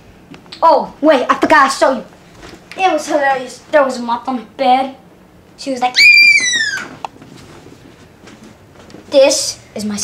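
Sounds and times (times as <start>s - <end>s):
child squealing: 5.8s - 7.0s.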